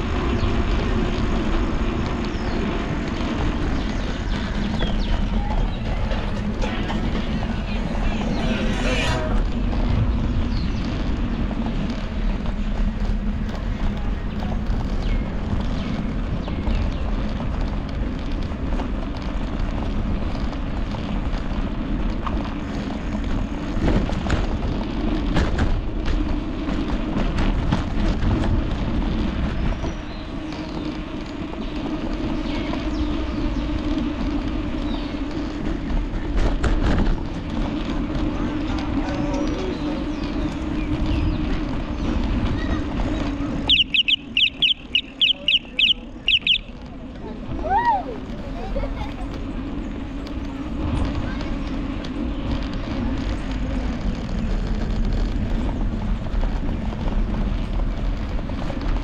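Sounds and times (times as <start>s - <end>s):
wind buffeting: 0.0s - 59.0s.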